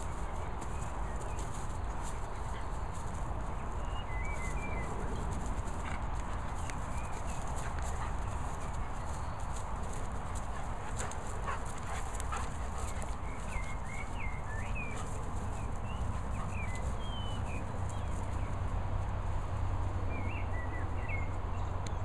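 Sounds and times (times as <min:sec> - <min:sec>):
dogs scuffling on grass: 0:00.0 - 0:22.0.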